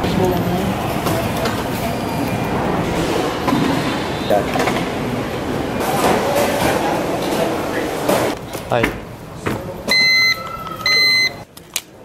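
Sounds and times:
short electronic beeps: 9.9s - 11.4s.

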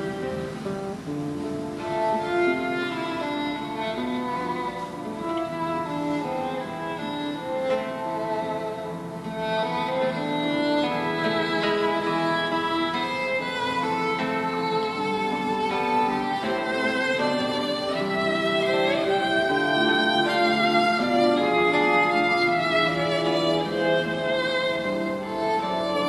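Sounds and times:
sad violin melody: 0.0s - 26.0s
soft accompaniment: 0.0s - 26.0s.

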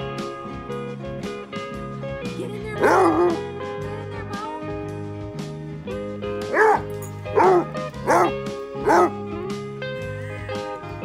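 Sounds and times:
background music: 0.0s - 11.0s
dog barking deeply: 2.8s - 3.5s, 6.5s - 9.2s.

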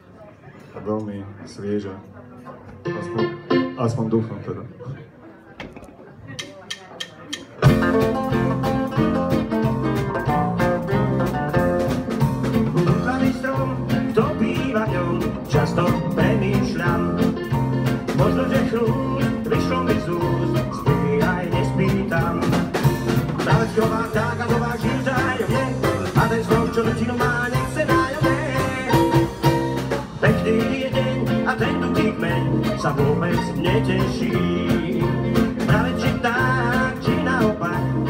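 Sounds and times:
acoustic guitars: 2.5s - 4.0s, 7.6s - 38.0s
drum kit: 5.6s - 38.0s
electric bass guitar: 7.6s - 38.0s.

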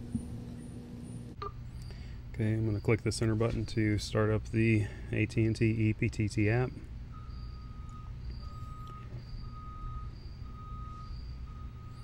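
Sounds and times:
low steady hum: 0.0s - 12.0s
faint electronic beep: 6.7s - 12.0s.

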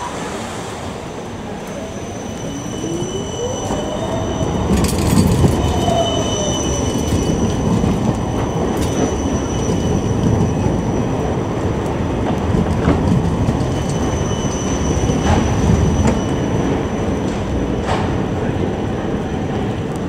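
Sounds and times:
rail rumble: 0.0s - 20.0s
tram motors whining: 0.0s - 20.0s
high-pitched wheel squeal: 1.5s - 11.3s, 13.7s - 17.4s.

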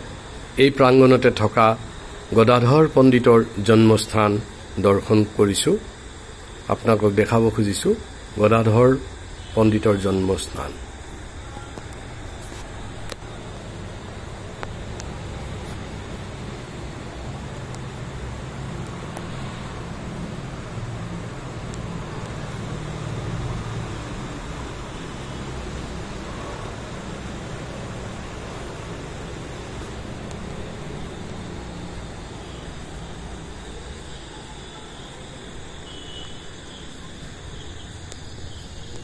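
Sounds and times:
faint cricket chirping: 0.0s - 39.0s.

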